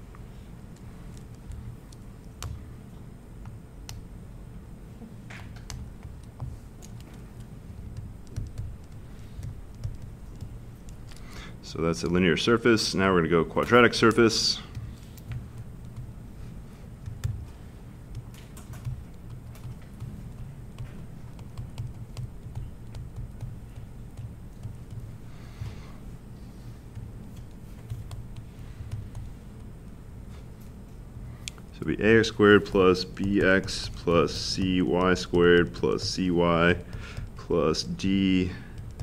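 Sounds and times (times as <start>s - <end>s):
low room hum: 0.0s - 39.0s
stylus tapping on tablet screen: 7.8s - 11.1s, 17.0s - 25.8s, 36.8s - 39.0s.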